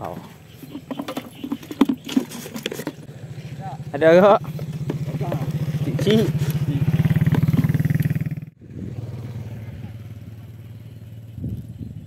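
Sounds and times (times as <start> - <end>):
small motorcycle engine idling: 0.6 - 12.0.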